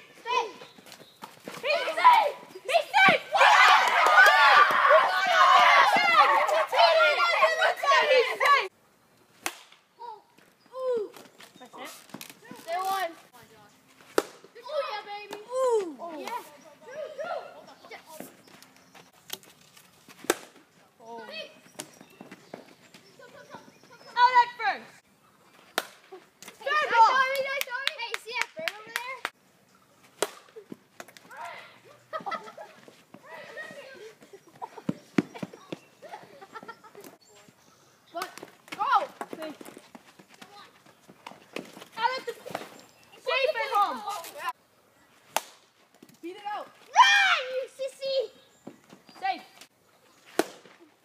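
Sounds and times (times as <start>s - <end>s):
players shouting: 1.6s - 8.7s.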